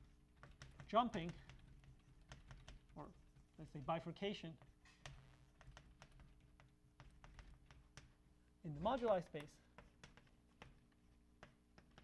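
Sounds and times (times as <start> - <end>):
chalk clicking on blackboard: 0.0 - 12.0.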